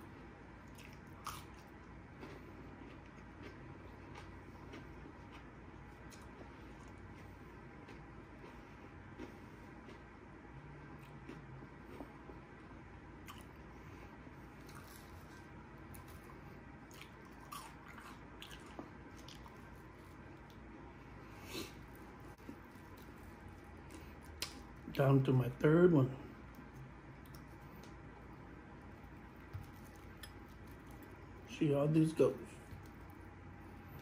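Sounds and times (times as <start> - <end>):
faint chewing with crunches: 0.0 - 34.0.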